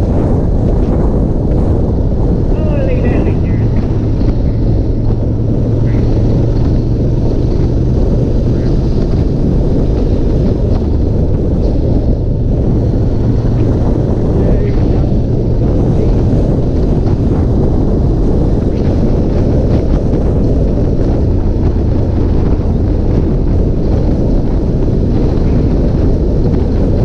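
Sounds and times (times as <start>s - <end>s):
motorcycle engine running: 0.0s - 27.0s
wind noise on microphone: 0.0s - 27.0s.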